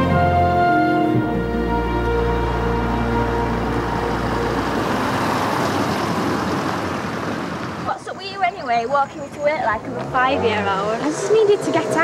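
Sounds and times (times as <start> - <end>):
theme music: 0.0 - 5.6
car driving past: 1.0 - 8.0.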